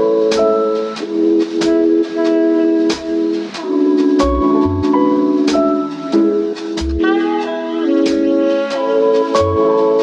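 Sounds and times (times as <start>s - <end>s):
drum beat with kick drum: 0.0s - 10.0s.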